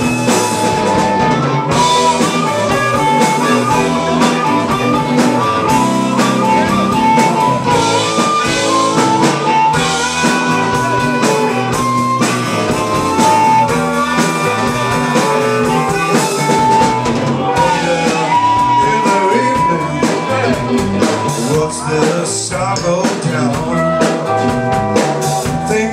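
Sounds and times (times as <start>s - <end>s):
amplified harmonica bending notes: 0.0s - 21.0s
blues band playing: 0.0s - 25.9s.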